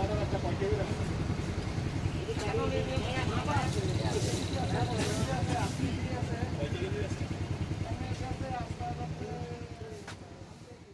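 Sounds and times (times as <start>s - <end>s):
indistinct voices talking: 0.0s - 9.9s
vehicle engine rumbling: 0.0s - 10.9s.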